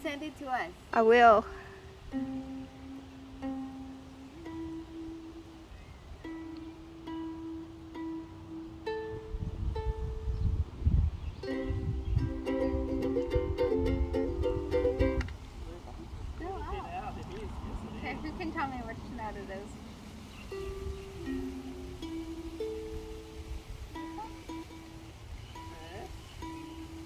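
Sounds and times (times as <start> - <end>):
ukulele chords strummed: 1.7 - 15.6, 20.5 - 27.0
ukulele strings plucked: 1.8 - 10.6, 11.4 - 15.6, 20.5 - 27.0.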